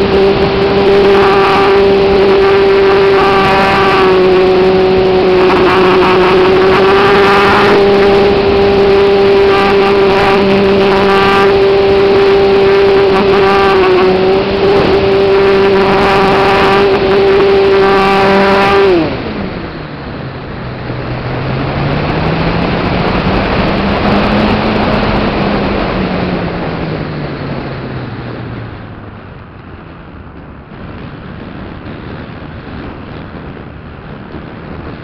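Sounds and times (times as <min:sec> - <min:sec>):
wind rushing: 0:00.0 - 0:35.0.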